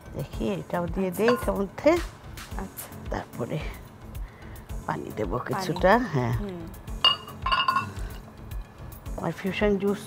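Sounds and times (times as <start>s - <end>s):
glassware clinking: 1.2s - 1.6s, 7.0s - 8.2s.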